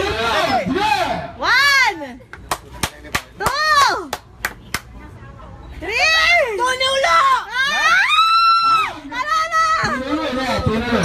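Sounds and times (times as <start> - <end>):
sharp claps: 2.4 - 4.9
long drawn-out shouts: 6.6 - 10.5.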